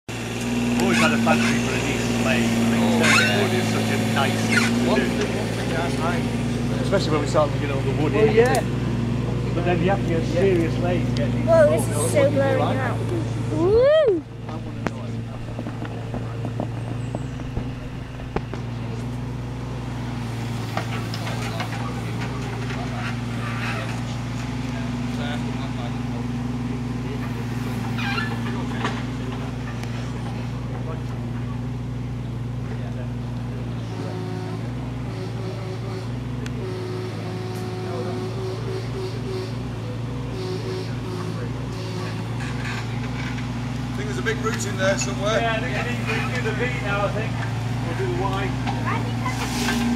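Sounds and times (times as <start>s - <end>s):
excavator diesel engine running: 0.1s - 32.6s.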